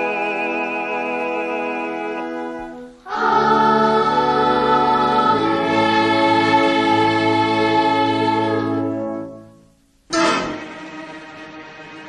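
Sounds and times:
boys choir singing: 0.0s - 9.2s
low sustained notes: 0.0s - 12.0s.

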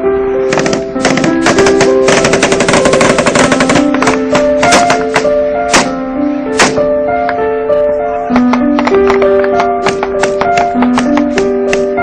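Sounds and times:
background music sustained notes: 0.0s - 12.0s
automatic rifle fire: 0.6s - 5.9s, 6.6s - 6.8s.

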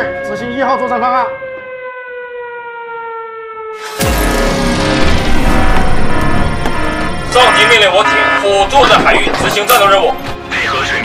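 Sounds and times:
siren falling in pitch: 0.0s - 8.5s.

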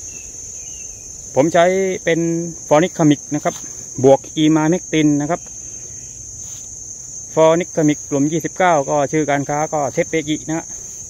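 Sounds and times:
insects chirring: 0.0s - 11.0s
man speaking: 1.4s - 5.4s, 7.3s - 10.8s.

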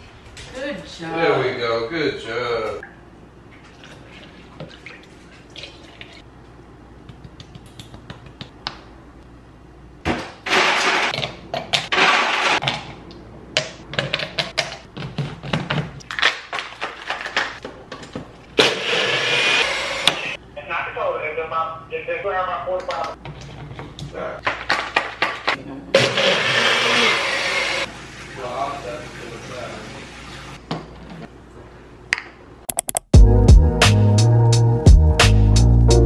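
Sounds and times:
blender running: 10.5s - 11.1s, 11.9s - 12.6s, 18.6s - 20.4s, 26.0s - 27.9s.

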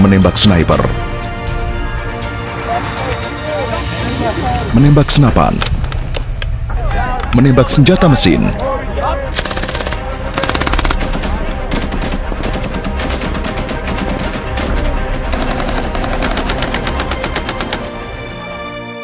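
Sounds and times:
background music: 0.0s - 19.0s
machine guns firing: 9.3s - 18.0s.

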